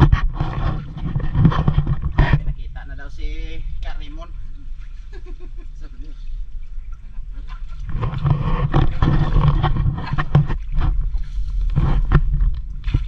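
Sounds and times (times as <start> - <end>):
steady low rumble: 0.0 - 13.0
muddy water splashing: 6.1 - 13.0.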